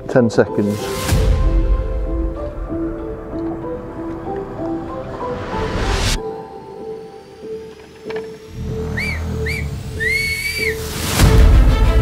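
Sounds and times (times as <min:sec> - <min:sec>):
background music: 0:00.0 - 0:12.0
whistle blasts: 0:08.7 - 0:11.2.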